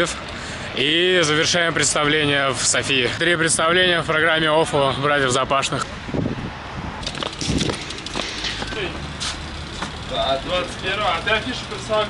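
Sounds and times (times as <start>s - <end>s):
motor vehicle rumbling past: 6.1s - 12.0s.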